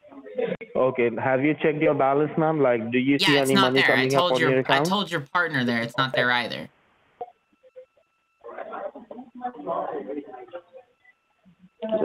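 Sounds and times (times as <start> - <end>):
man's voice over the phone: 2.4 - 5.0
faint steady phone tone: 3.2 - 8.5.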